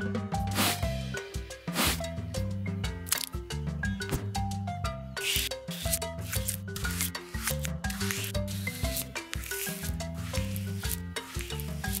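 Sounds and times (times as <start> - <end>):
light plucky background music: 0.0 - 12.0
paintbrush swish effect: 0.5 - 0.8, 1.7 - 2.0, 5.2 - 12.0.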